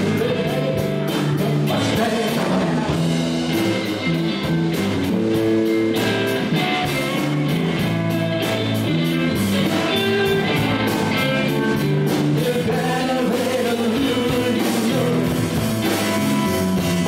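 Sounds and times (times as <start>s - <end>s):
bass guitar: 0.0s - 17.0s
drum kit steady beat: 0.0s - 17.0s
electric guitar lead: 0.0s - 17.0s.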